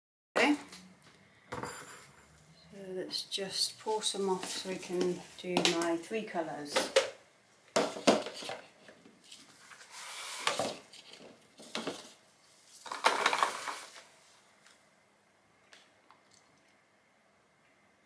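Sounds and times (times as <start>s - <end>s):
plastic jugs clattering on steel counter: 6.7s - 8.6s, 11.6s - 12.1s, 12.9s - 13.9s.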